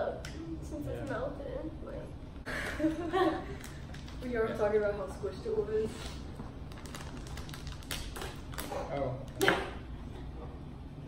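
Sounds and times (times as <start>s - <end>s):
plastic wrapper crinkling: 6.6s - 9.4s.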